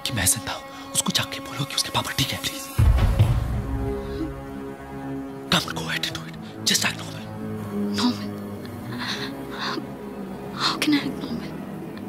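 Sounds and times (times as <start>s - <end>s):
film score music: 0.0s - 12.0s
woman speaking: 7.9s - 8.3s, 10.6s - 11.5s.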